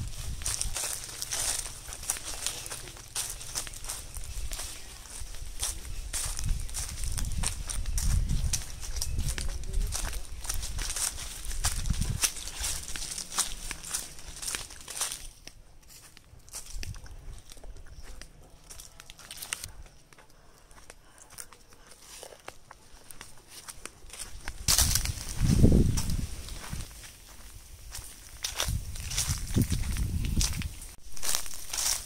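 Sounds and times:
footsteps crunching dry leaves: 0.0s - 32.0s.

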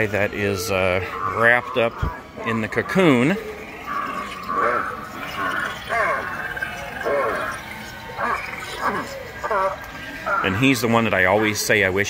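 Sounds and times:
indistinct voice with sliding pitch: 0.3s - 11.6s.

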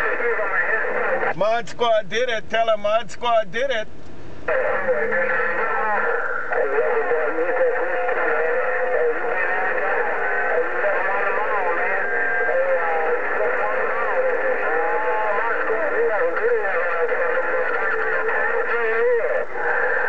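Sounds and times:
garbled radio voice: 0.0s - 3.9s, 4.5s - 20.0s
steady radio whistle: 4.5s - 20.0s.

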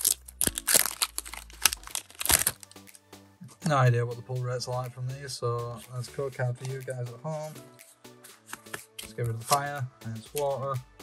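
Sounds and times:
foil wrapper crinkling: 0.0s - 2.8s
cards sliding out: 8.2s - 9.6s.

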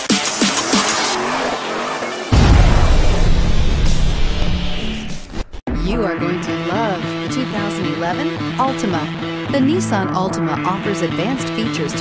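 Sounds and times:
car sound effect: 0.0s - 8.9s
loud deep rumble: 2.3s - 6.1s.

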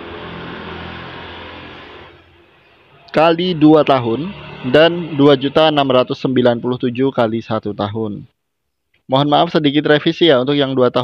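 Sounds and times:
road vehicle passing by: 0.0s - 6.8s.

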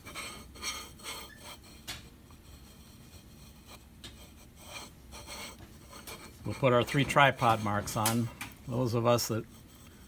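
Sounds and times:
marker scraping on stone cast: 0.0s - 1.8s, 2.4s - 8.0s.

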